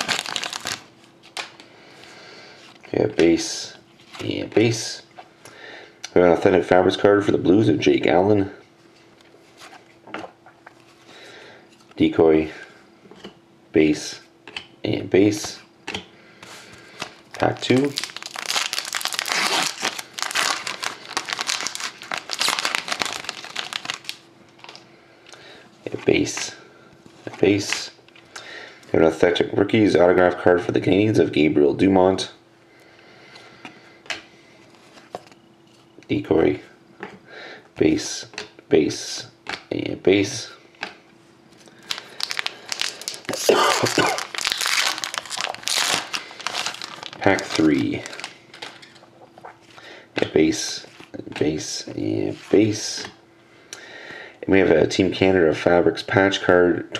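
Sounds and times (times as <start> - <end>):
foil wrapper tearing and crinkling: 0.0 - 1.5, 17.3 - 24.8, 41.8 - 49.0.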